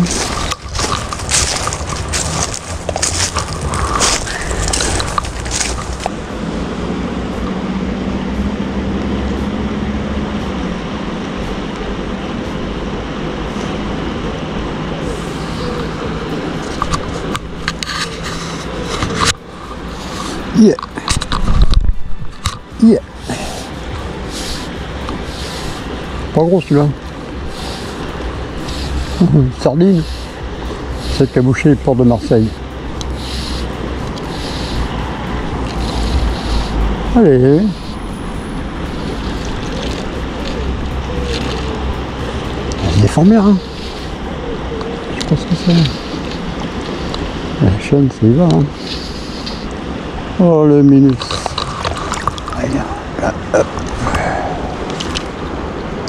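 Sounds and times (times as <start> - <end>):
footsteps crunching on leaves and gravel: 0.0 - 6.2
wind on microphone: 0.0 - 47.8, 48.7 - 56.0
river rushing: 0.0 - 56.0
fishing rod knocks and rustles: 0.1 - 6.2.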